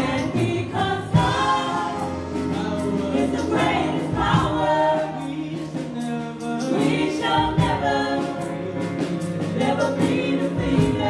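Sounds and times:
keyboard accompaniment: 0.0 - 11.0
women singing gospel song: 0.0 - 11.0.

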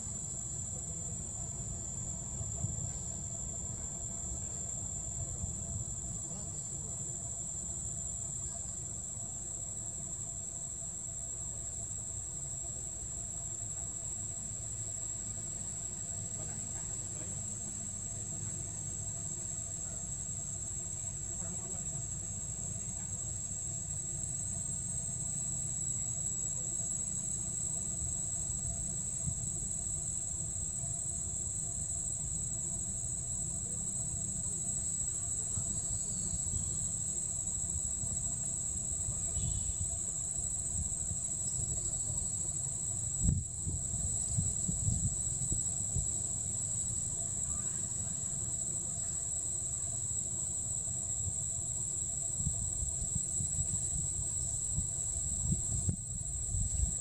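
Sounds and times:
insects droning: 0.0 - 57.0.

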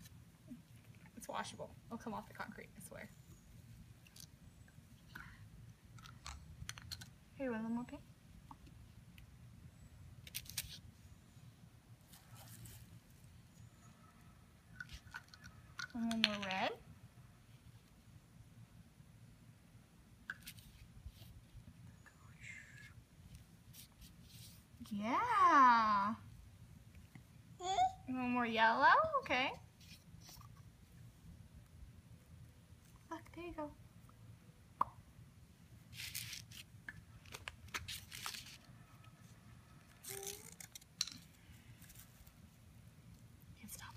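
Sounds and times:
soft rustle: 12.0 - 14.0, 20.4 - 25.0, 29.6 - 30.7, 35.8 - 43.9
scraping and crinkling: 35.9 - 38.7.

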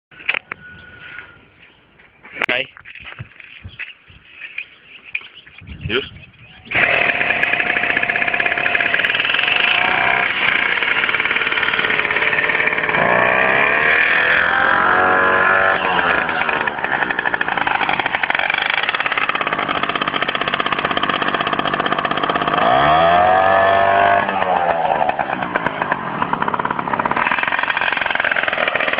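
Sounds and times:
motorbike engine revving: 6.6 - 28.9.

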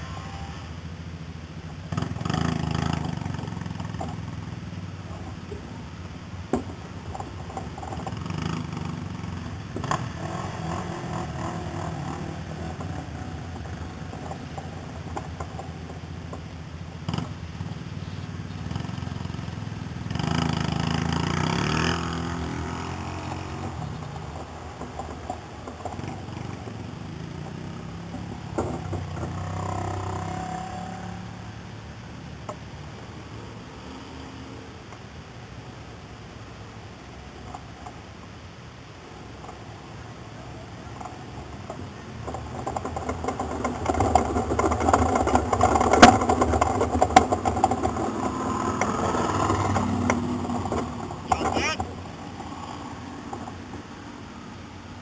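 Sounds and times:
vehicle engines running: 0.0 - 55.0.

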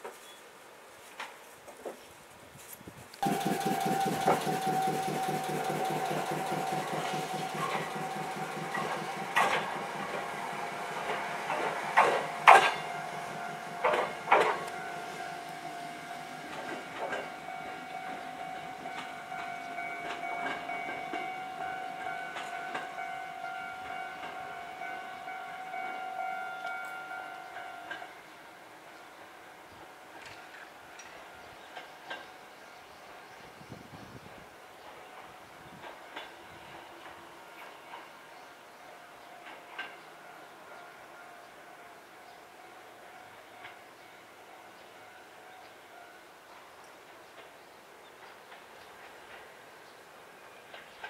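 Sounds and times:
wheels clacking over rail joints: 3.2 - 26.8, 39.4 - 40.1
electric train motor and running noise: 3.2 - 51.0.

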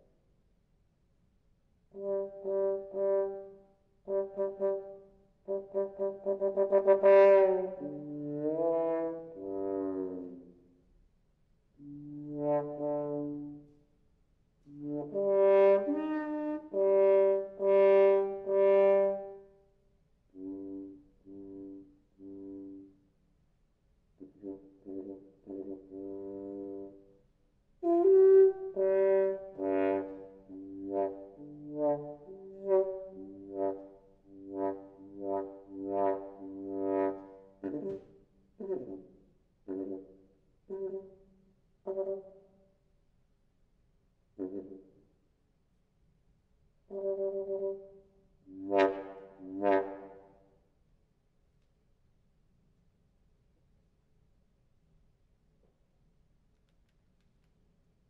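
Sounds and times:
muted bass trombone playing: 2.0 - 10.6, 11.8 - 13.6, 14.7 - 19.3, 20.4 - 23.0, 24.2 - 27.0, 27.8 - 41.1, 44.4 - 45.0, 46.9 - 47.9, 48.5 - 50.3.

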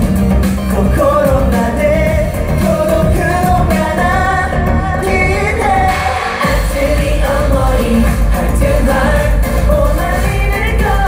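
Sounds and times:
loud backing music with heavy bass: 0.0 - 11.0
man singing into a microphone: 0.7 - 11.0.

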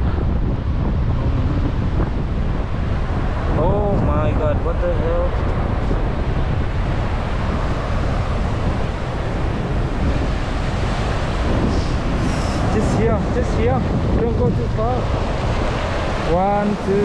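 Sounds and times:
waves breaking on the beach: 0.0 - 17.0
wind buffeting the microphone: 0.0 - 17.0
person speaking: 16.2 - 17.0.

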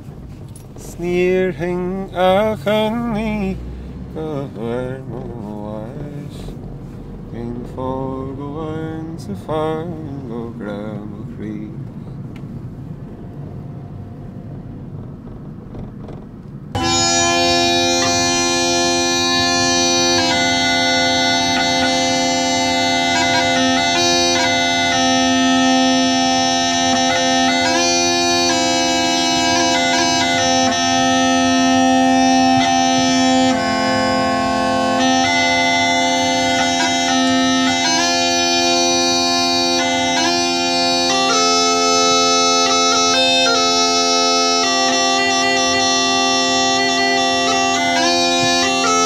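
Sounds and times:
car driving rumble: 0.0 - 49.0
bagpipe tune: 16.7 - 49.0.

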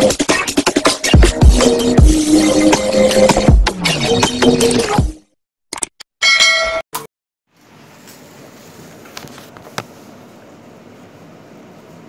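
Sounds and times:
music: 0.0 - 5.4
metallic bell-like ding: 6.2 - 7.1.

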